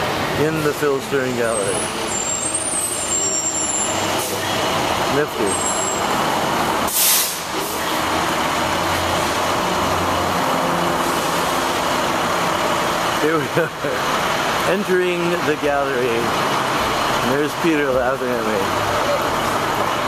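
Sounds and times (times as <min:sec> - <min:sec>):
large vehicle engine running: 0:00.0 - 0:20.0
street traffic: 0:00.0 - 0:20.0
loud hiss: 0:06.8 - 0:07.9.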